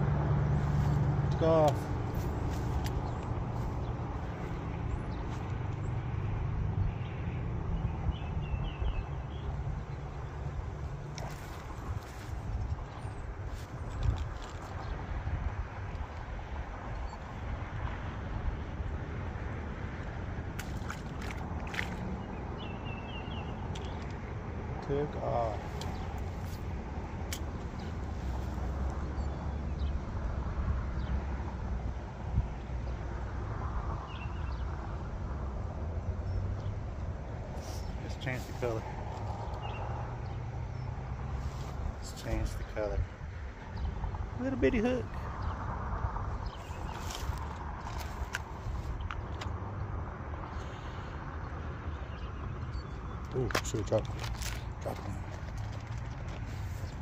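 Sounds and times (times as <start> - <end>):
wind rumble on microphone: 0.0 - 57.0.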